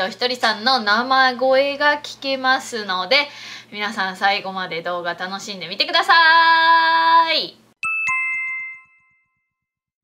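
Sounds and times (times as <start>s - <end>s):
two-note chime: 7.8s - 9.7s.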